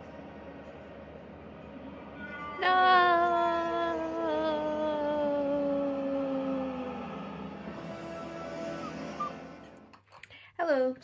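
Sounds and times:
film score music from television: 0.0 - 10.6.

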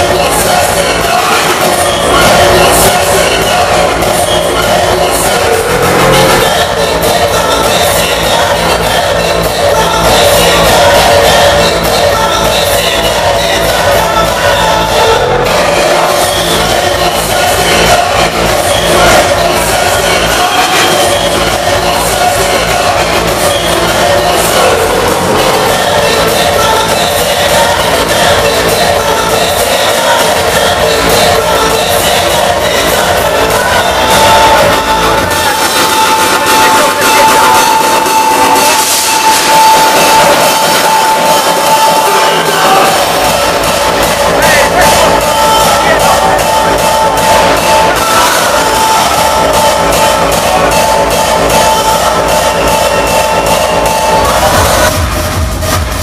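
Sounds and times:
hardstyle music over sound system: 0.0 - 56.0
pounding kick drum: 42.8 - 56.0.

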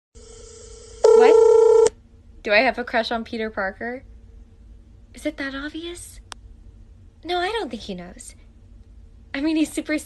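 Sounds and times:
video call tone: 0.2 - 2.0.

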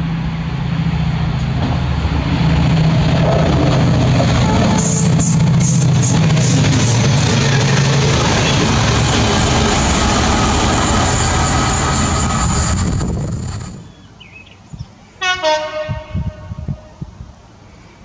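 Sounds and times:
train horn blast: 4.4 - 5.3, 15.2 - 16.9.

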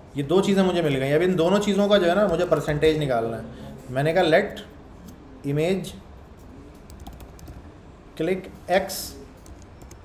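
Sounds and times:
computer keyboard typing: 2.1 - 2.7, 6.7 - 7.7, 9.4 - 10.0.

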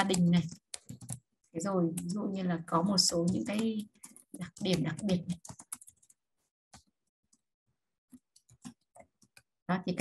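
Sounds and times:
computer keyboard typing: 0.0 - 7.5, 8.1 - 9.6.

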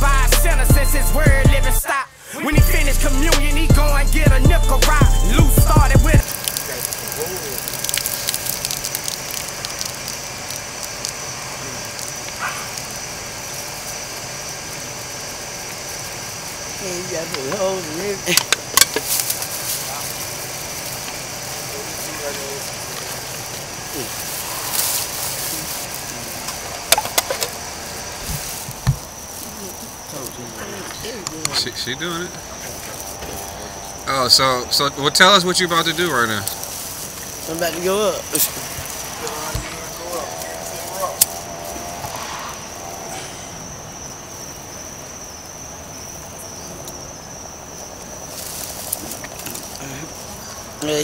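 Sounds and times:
car engine idling: 0.0 - 44.3
constant hiss: 0.0 - 51.0
crickets trilling: 0.0 - 51.0.

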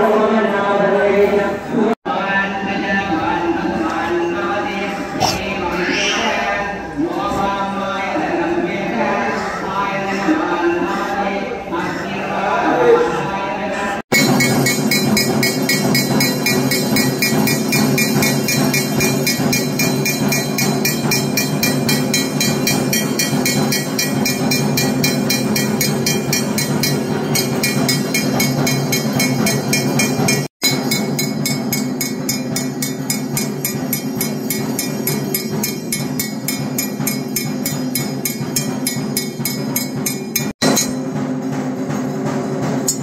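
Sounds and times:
temple bells ringing fast: 14.1 - 41.2.

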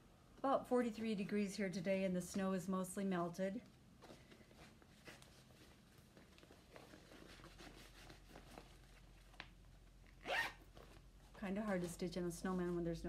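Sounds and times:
fabric rustling: 3.9 - 13.0.

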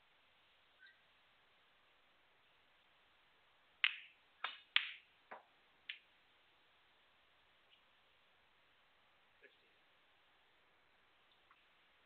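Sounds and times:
snooker balls clicking: 3.8 - 6.0.

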